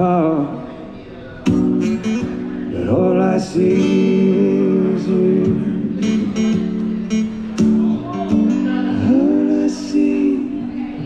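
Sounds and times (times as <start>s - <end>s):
acoustic guitar strumming: 1.4s - 11.0s
man singing long notes: 1.8s - 10.8s.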